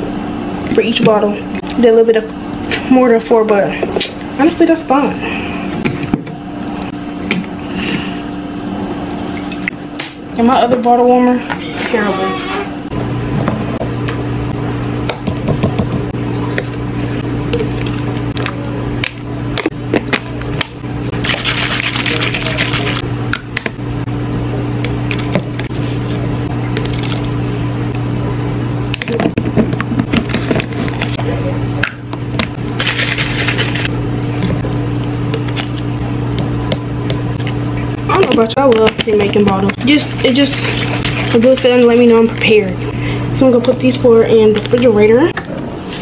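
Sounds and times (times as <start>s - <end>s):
low electrical hum: 0.0s - 46.0s.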